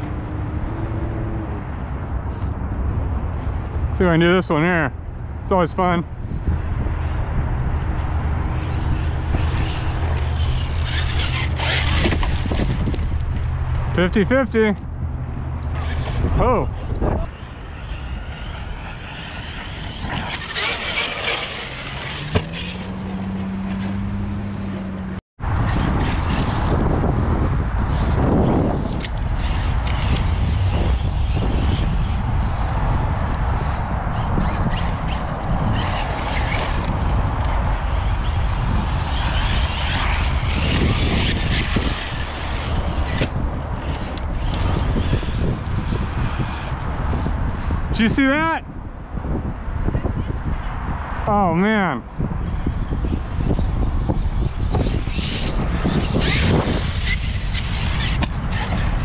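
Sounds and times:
rc truck rushing and rumbling: 0:00.0 - 0:51.2, 0:52.1 - 0:59.0
wind on microphone: 0:00.0 - 0:59.0
rising motor tone: 0:16.9 - 0:25.6.

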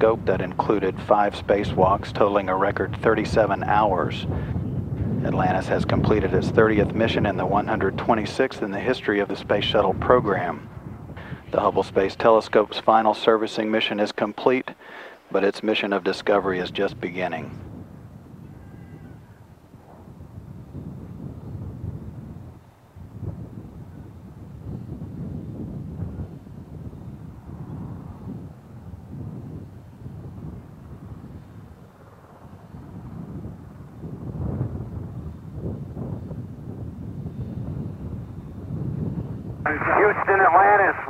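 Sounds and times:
wind buffeting microphone: 0:00.0 - 0:13.2, 0:16.0 - 0:41.0.

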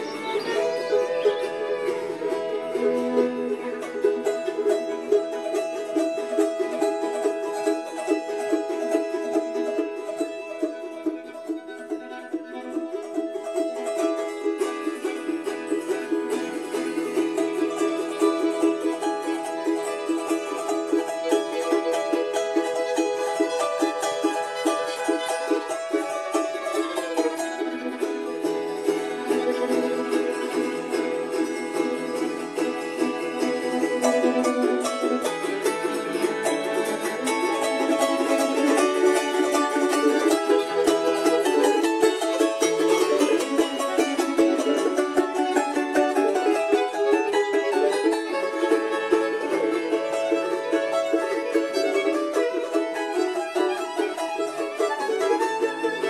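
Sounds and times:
fast-picked folk string music: 0:00.0 - 0:56.0.

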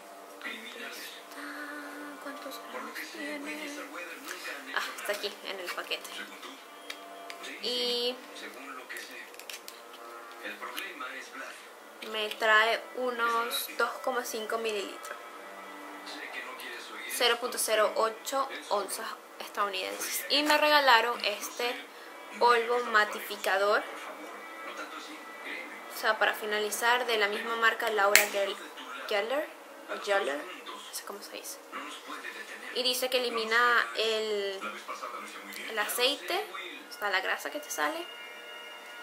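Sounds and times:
low steady hum: 0:00.0 - 0:34.6
faint television sound: 0:00.0 - 0:39.0
paper packet rustling and clicking: 0:09.0 - 0:09.9.

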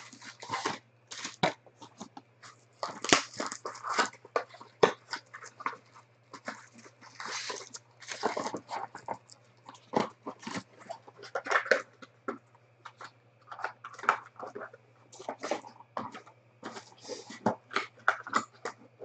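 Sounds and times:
foil packs crinkling: 0:00.0 - 0:19.0.

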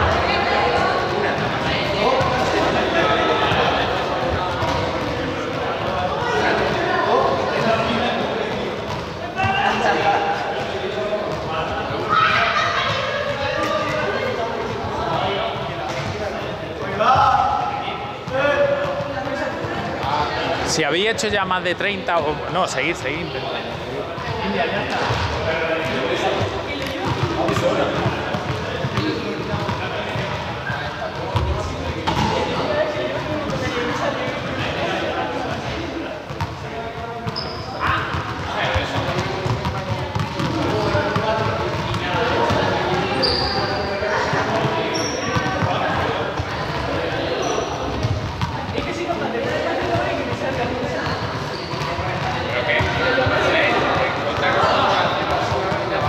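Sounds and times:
echoing babble of voices: 0:00.0 - 0:56.0
balls bouncing on hard floor: 0:03.5 - 0:06.8, 0:26.7 - 0:30.4, 0:31.2 - 0:32.4, 0:36.3 - 0:43.6, 0:44.2 - 0:53.0.

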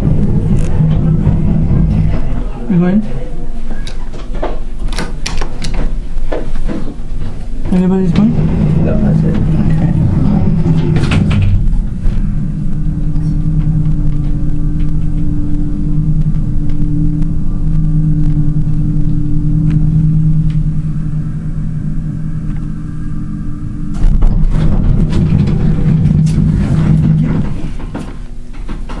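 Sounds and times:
elevator low hum: 0:00.0 - 0:29.0
rumbling noise: 0:00.0 - 0:29.0.

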